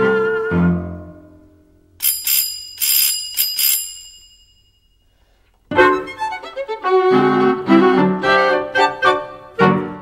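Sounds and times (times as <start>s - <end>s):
small bell ringing quickly: 2.0s - 5.1s.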